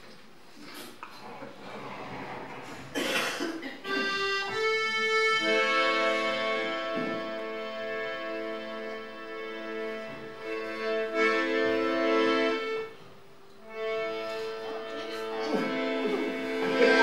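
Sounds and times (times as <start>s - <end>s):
accordion playing held chords: 3.0s - 17.0s.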